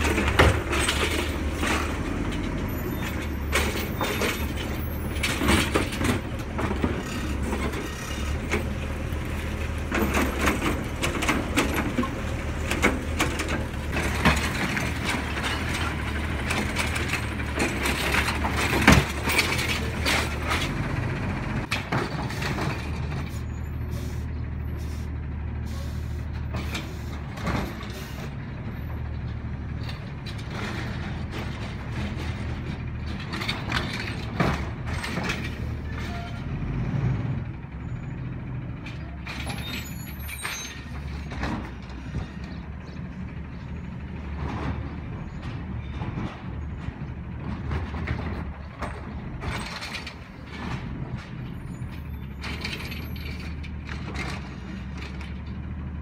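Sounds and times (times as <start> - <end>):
hydraulic arm clanks and creaks: 0.0 - 24.9, 25.6 - 56.0
diesel engine running: 0.0 - 56.0.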